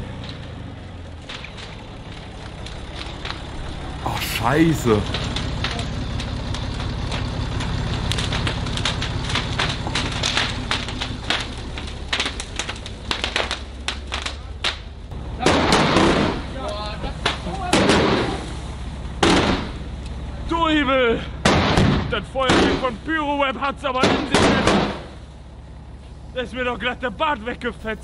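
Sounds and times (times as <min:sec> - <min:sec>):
fireworks crackling pops: 0:04.1 - 0:16.4.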